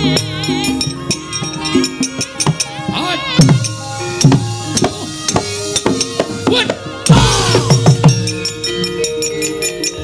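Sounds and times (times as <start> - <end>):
drum strokes dropping in pitch: 7.1 - 8.4.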